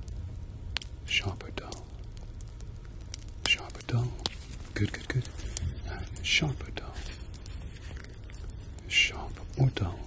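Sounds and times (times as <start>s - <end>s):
man whispering: 1.0s - 2.1s, 3.4s - 10.0s.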